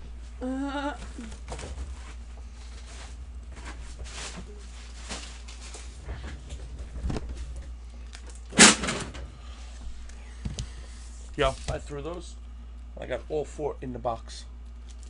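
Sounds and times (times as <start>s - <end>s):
low steady hum: 0.0s - 15.0s
faint rustling and handling: 1.2s - 8.2s, 9.6s - 12.2s.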